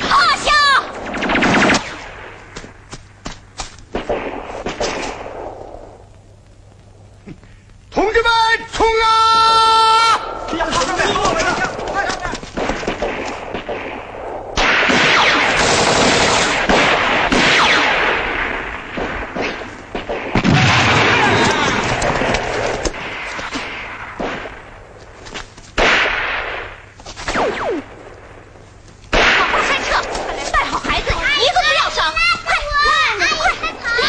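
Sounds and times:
machine-gun and rifle fire: 0.0 - 2.4, 10.8 - 24.8.

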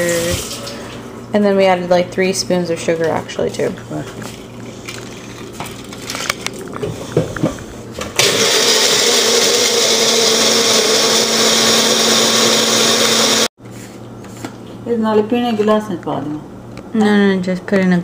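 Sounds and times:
blender running: 8.2 - 13.5.

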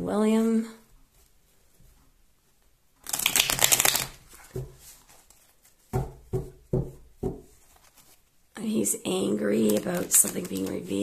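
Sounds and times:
cards riffle-shuffling: 3.0 - 5.8, 7.6 - 8.3, 9.5 - 11.0
soft knock: 5.9 - 7.5.

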